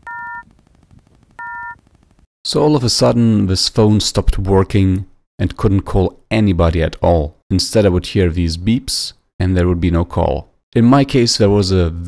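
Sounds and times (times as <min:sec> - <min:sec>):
phone call-failure beeps: 0:00.0 - 0:00.4, 0:01.4 - 0:01.8.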